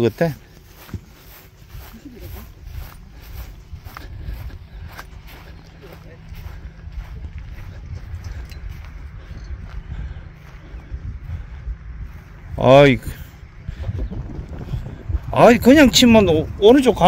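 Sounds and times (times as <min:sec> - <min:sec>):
wind rumbling on microphone: 0:00.0 - 0:17.0.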